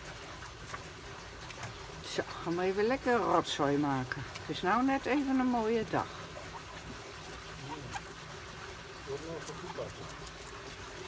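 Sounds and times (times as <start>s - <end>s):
pecking and scratching in gravel: 7.3s - 11.0s.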